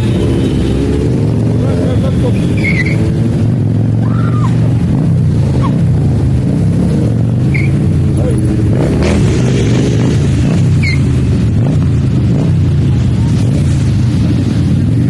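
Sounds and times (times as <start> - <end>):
motorcycles riding past: 0.0 - 15.0.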